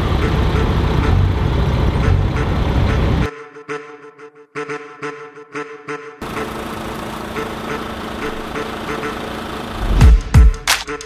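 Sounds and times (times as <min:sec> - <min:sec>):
vehicle engine idling: 0:00.0 - 0:03.3, 0:06.2 - 0:11.0
rushing noise: 0:09.8 - 0:10.5.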